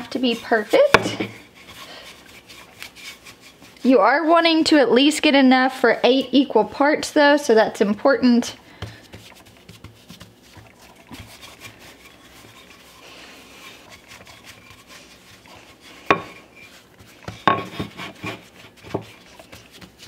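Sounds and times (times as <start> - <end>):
rolling pin rubbing dough: 0.0 - 7.2, 8.0 - 20.0
rolling pin knocking on wood: 17.3 - 18.0.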